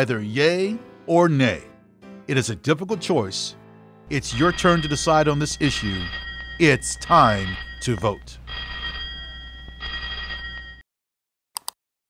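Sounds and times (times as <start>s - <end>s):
high bell-like ringing tones: 4.1s - 10.8s
low hum: 4.1s - 10.8s.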